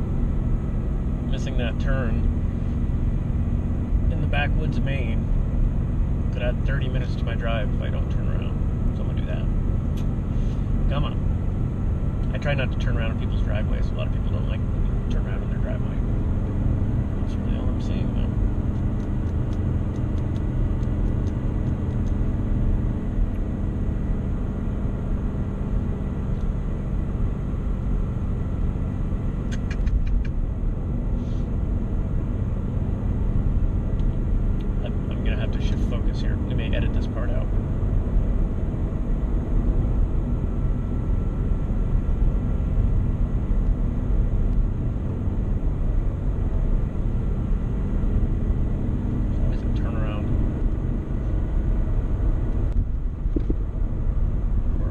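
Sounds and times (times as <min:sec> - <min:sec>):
car engine drone: 0:00.0 - 0:54.9.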